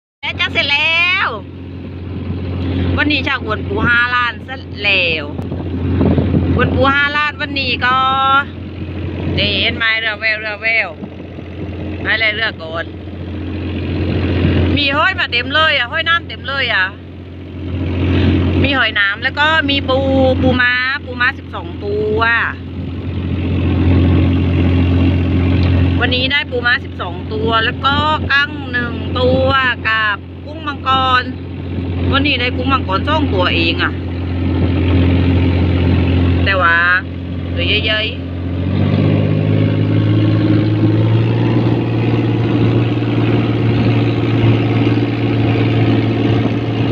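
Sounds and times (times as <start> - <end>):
woman talking: 0.2 - 1.5, 2.8 - 5.4, 6.6 - 8.6, 9.3 - 11.0, 12.0 - 12.9, 14.7 - 17.0, 18.6 - 22.6, 26.0 - 31.4, 32.0 - 34.0, 36.4 - 38.2
boat engine humming: 0.2 - 46.9.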